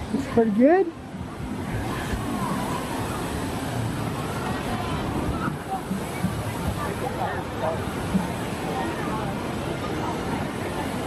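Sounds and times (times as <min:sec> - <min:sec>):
faint distant voices: 0:00.0 - 0:11.0
steady rush of noise: 0:00.0 - 0:11.0.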